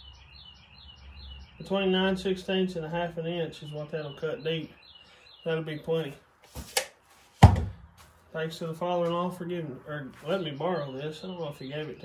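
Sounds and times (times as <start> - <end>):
sharp ringing thunk: 7.4 - 7.8.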